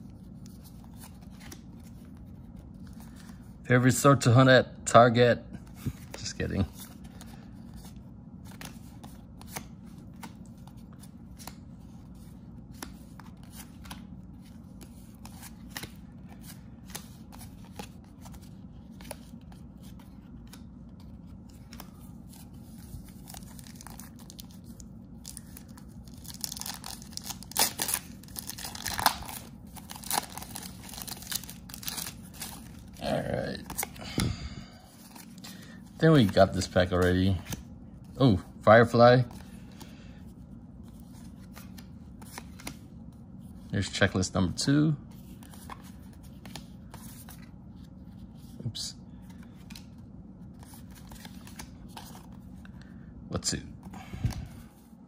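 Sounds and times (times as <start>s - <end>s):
cards rustling and riffling: 0.0s - 3.6s, 5.6s - 43.7s, 45.1s - 53.0s
steady low hum: 0.0s - 55.0s.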